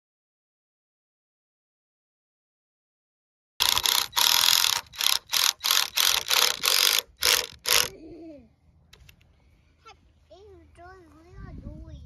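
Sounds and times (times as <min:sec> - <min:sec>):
cordless driver driving screws: 0:03.6 - 0:07.9.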